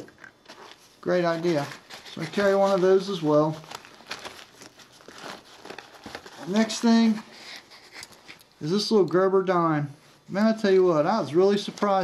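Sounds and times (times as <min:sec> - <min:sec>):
hands rummaging in nylon pack: 0:00.0 - 0:08.4, 0:11.4 - 0:12.0.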